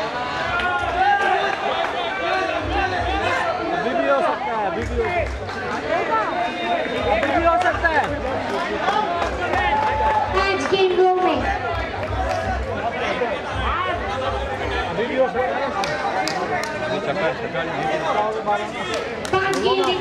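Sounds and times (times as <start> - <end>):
people talking and calling: 0.0 - 20.0.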